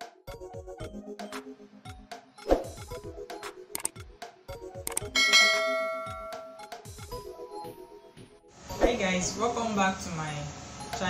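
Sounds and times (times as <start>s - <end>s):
background music with drum beat: 0.0s - 8.3s
bright bell chime: 5.1s - 6.7s.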